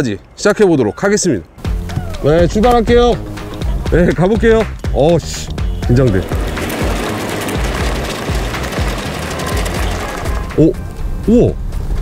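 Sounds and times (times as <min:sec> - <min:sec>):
flat tyres rolling on asphalt: 0:05.2 - 0:11.2
car engine: 0:05.5 - 0:11.2.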